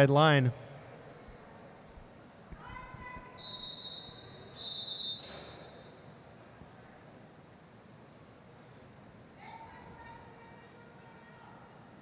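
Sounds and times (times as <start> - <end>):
referee's whistle blasts: 3.4 - 5.8.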